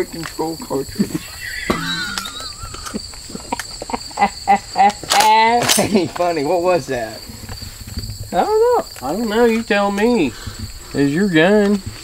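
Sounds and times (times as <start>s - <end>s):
insects droning: 0.0s - 12.0s
brief laughter: 1.0s - 5.1s.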